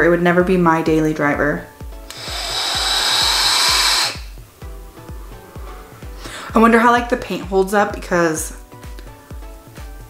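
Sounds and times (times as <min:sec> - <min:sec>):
background music with low beat: 0:00.0 - 0:10.0
airy vape hiss: 0:01.8 - 0:06.6.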